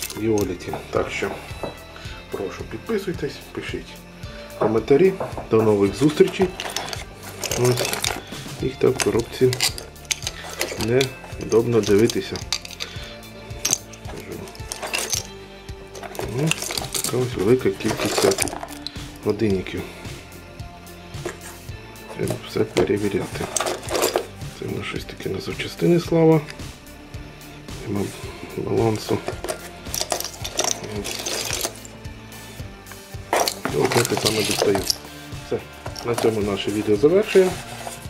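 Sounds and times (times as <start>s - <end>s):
metal watches clinking: 0.0s - 0.7s, 5.9s - 19.6s, 21.2s - 24.4s, 28.8s - 32.1s, 32.9s - 38.0s
background music: 0.0s - 38.0s.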